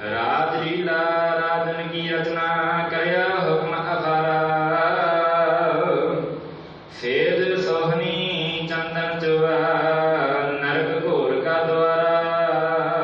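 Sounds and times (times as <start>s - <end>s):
devotional chanting: 0.0s - 13.0s.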